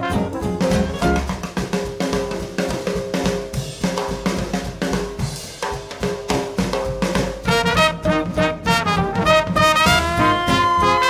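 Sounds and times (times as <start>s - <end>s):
swing band drum kit: 0.0s - 11.0s
held brass-like tones: 7.5s - 11.0s.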